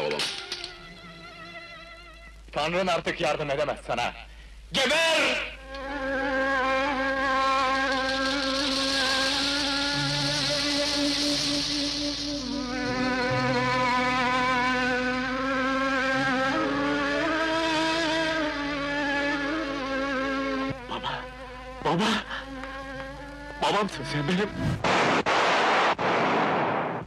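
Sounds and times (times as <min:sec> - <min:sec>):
long held wavering note: 0:05.7 - 0:21.6
lower note: 0:05.8 - 0:21.8.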